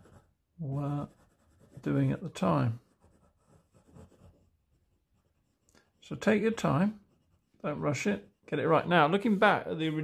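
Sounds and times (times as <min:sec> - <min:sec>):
oil pastel rubbing on paper: 0:00.0 - 0:06.1.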